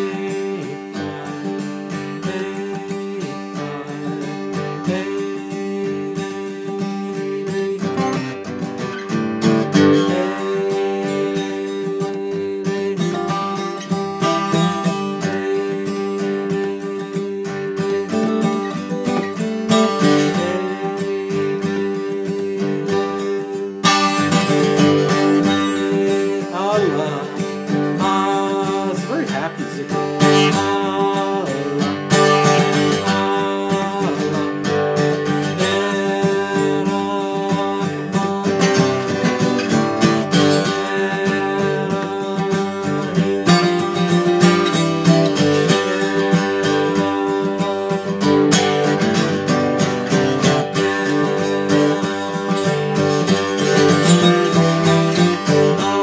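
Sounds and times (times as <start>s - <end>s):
man singing a chant: 0.0s - 8.4s, 9.7s - 48.2s, 53.9s - 56.0s
acoustic guitar strumming: 0.0s - 56.0s.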